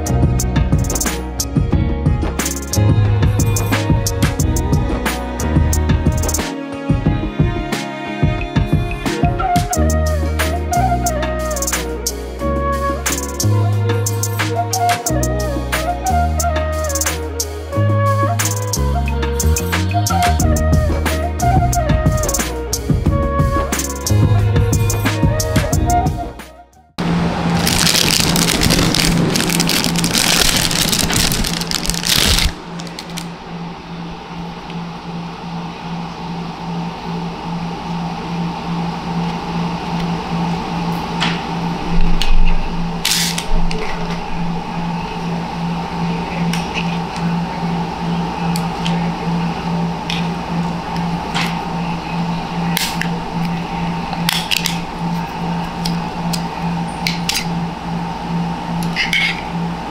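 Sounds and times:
low pulsing hum: 8.4 - 59.9
plastic bag crinkling: 27.6 - 33.3.

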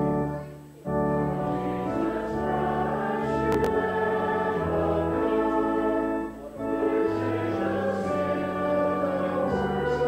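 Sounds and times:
congregation singing a hymn: 0.0 - 10.0
organ chords: 0.0 - 10.0.

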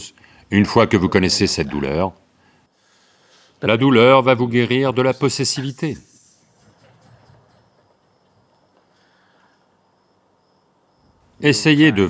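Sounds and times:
thin high-pitched whine: 4.3 - 10.2.

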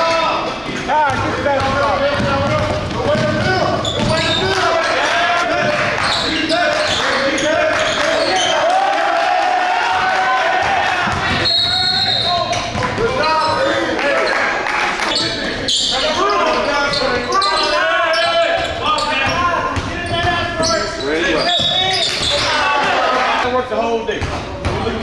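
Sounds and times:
indistinct echoing voices: 0.0 - 25.0
basketball dribbling on wooden floor: 1.1 - 4.2.

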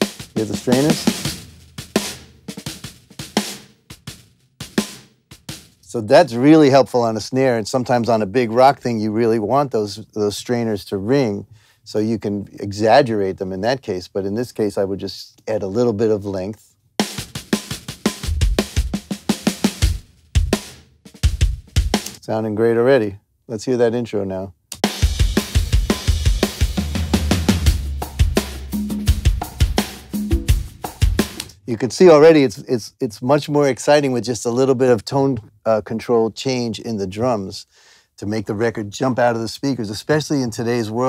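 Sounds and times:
kick and snare drum hits: 0.0 - 5.8, 24.8 - 31.5.

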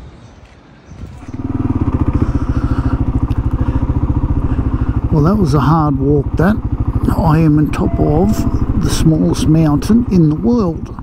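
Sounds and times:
motorcycle engine running: 1.0 - 11.0.

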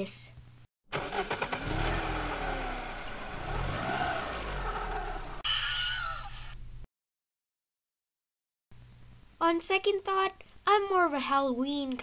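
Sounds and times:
car engine revving: 0.9 - 5.4.

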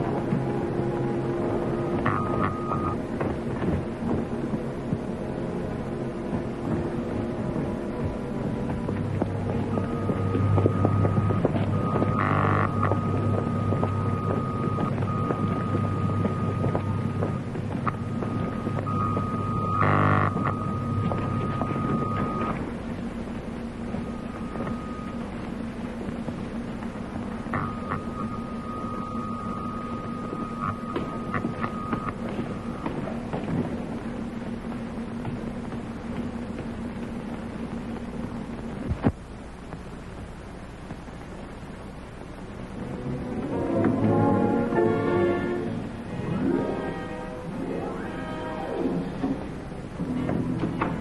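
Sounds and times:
high steady tone: 0.0 - 34.7
crackling electrical surges: 0.0 - 51.0
electrical apparatus humming: 0.0 - 51.0.

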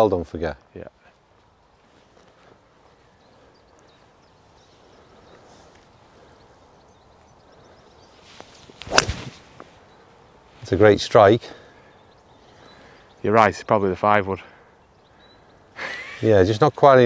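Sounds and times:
golf club swish: 8.3 - 9.7
golf club striking ball: 8.8 - 9.4.

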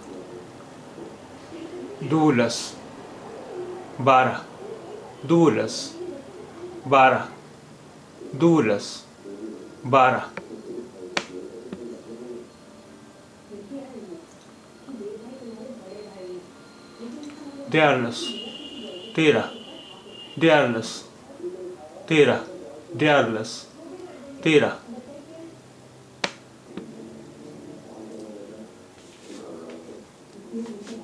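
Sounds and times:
faint background sound: 0.0 - 31.0.

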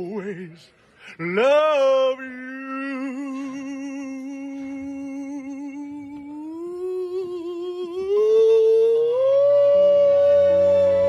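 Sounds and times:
man singing long note: 1.2 - 11.0.

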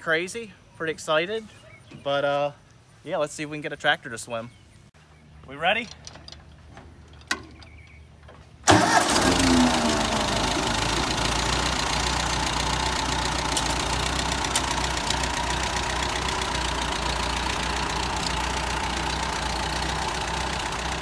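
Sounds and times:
tractor engine starting and idling: 5.8 - 21.0.

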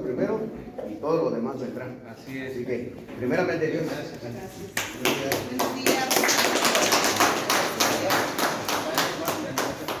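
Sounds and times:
people clapping: 4.7 - 10.0.

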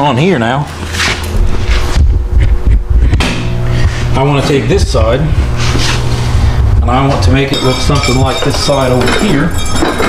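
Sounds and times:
microphone handling rumble: 1.0 - 9.3.

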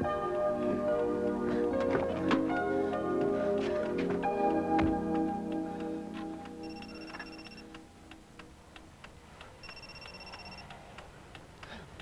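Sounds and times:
music cue: 2.6 - 8.2
clock ticking: 5.0 - 12.0
electronic telephone ring: 6.6 - 7.7, 9.6 - 10.7.

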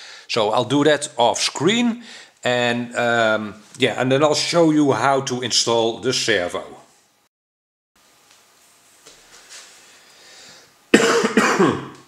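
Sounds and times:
person coughing: 10.9 - 12.0.

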